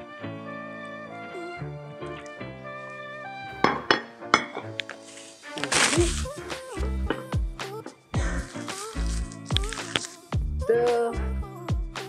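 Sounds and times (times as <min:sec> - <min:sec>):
instrumental background music: 0:00.0 - 0:12.0
utensil clinking on dishware: 0:03.6 - 0:04.8.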